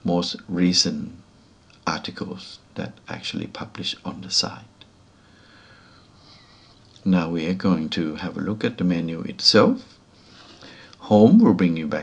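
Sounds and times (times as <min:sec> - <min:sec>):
room hiss: 0:00.0 - 0:12.0
person breathing in: 0:05.2 - 0:06.7.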